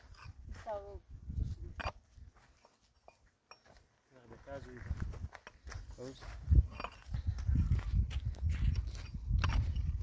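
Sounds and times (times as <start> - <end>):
soil and stones scraping: 0.0 - 10.0
digging tool striking stony ground: 1.7 - 2.0, 6.6 - 7.2, 8.6 - 10.0.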